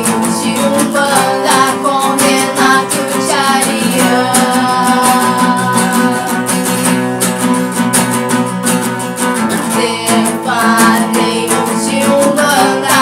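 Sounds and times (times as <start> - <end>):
woman singing: 0.0 - 7.7, 9.5 - 13.0
acoustic guitars strummed: 0.0 - 13.0.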